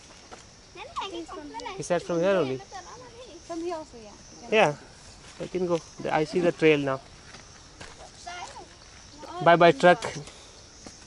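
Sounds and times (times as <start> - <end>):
footsteps on stone and dirt: 0.0 - 1.7, 2.7 - 11.0.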